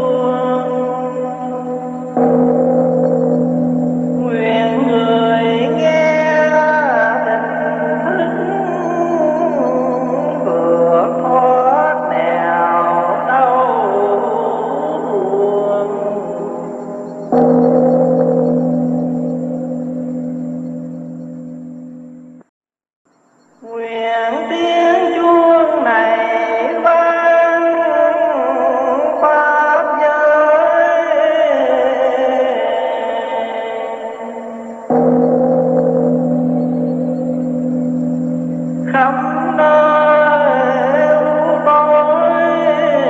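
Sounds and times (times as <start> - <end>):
deep gong ringing: 0.0 - 22.4, 34.9 - 43.0
large bell humming: 0.0 - 22.4, 34.7 - 43.0
singing: 4.2 - 17.0, 23.6 - 34.9, 38.8 - 43.0.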